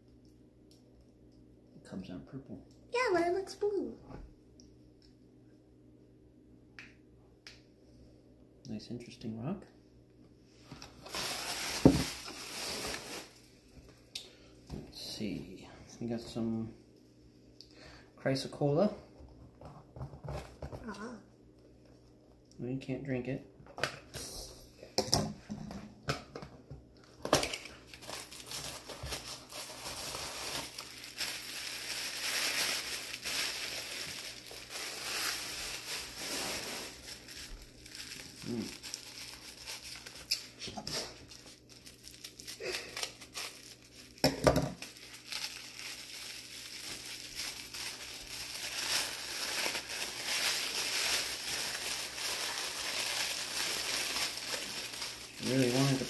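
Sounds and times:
packing paper crinkling: 0:10.8 - 0:13.5, 0:27.4 - 0:56.0.

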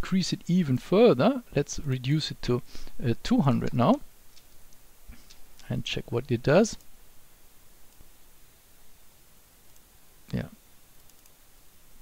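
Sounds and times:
room hiss: 0:00.0 - 0:12.0
computer mouse clicks: 0:04.3 - 0:05.7, 0:11.0 - 0:11.4.

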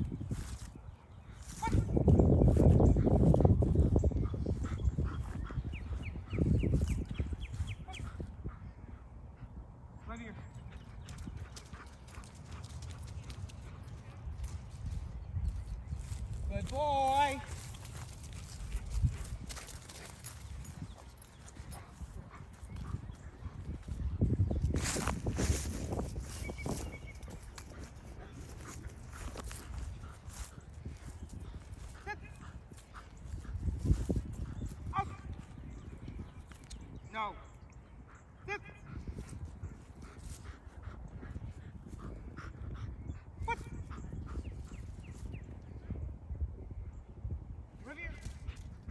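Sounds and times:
low wind rumble: 0:00.0 - 0:48.9.

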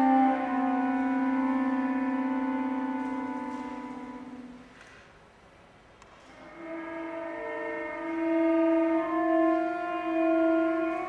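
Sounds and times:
cello playing sustained chords: 0:00.0 - 0:05.0, 0:06.3 - 0:11.0.

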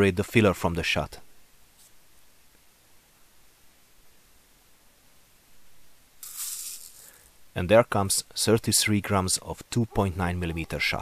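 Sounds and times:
lead shot pellets rattling: 0:06.2 - 0:07.3.

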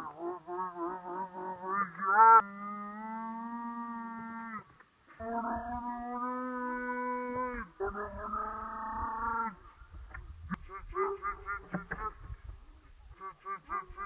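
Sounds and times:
person holding long sung notes: 0:00.0 - 0:09.9.

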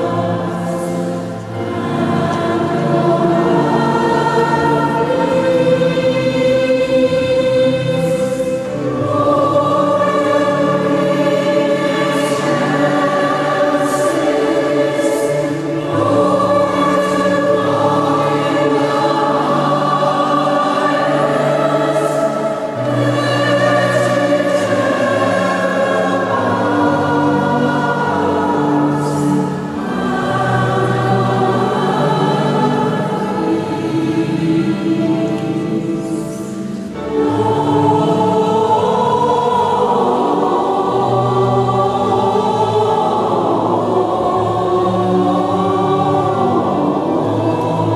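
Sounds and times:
mixed choir singing: 0:00.0 - 0:47.9.

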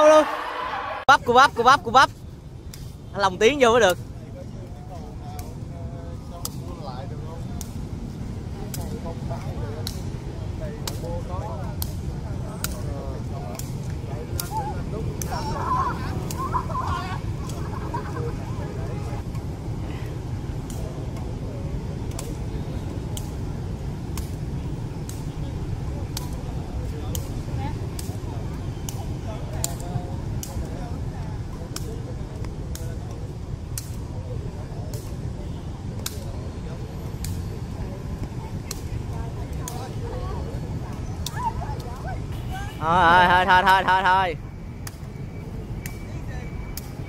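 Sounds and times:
city street traffic rumble: 0:00.7 - 0:47.0.

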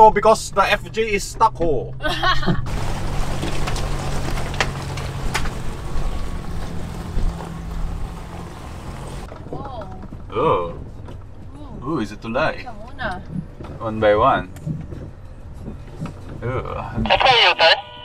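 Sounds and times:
car engine running: 0:00.0 - 0:17.8.

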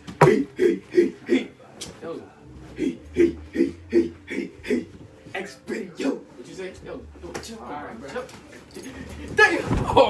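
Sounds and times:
rustling of clothes and bedding: 0:04.8 - 0:10.0.

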